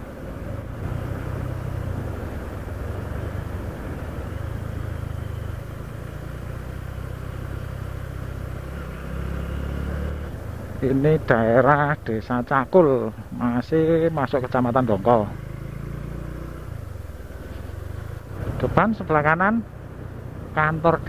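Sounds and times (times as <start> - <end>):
motorcycle engine running: 0.0 - 21.0
road noise: 0.0 - 21.0.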